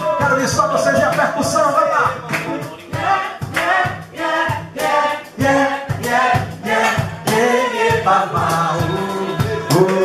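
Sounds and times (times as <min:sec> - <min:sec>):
live band music: 0:00.0 - 0:10.0
person singing: 0:07.3 - 0:10.0.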